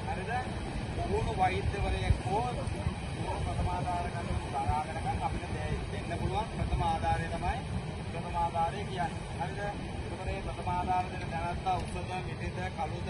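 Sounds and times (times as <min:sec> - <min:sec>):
wind and surf rumble: 0:00.0 - 0:13.0.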